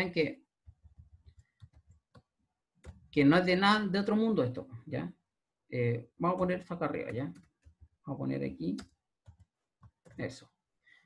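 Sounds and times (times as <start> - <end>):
computer mouse clicking: 0.6 - 3.1, 7.0 - 8.0, 8.7 - 10.3.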